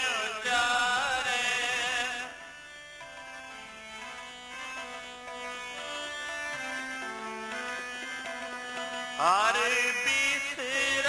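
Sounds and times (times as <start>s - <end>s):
man singing: 0.0s - 2.5s, 9.2s - 11.0s
harmonium drone: 0.0s - 11.0s
tabla: 0.0s - 11.0s.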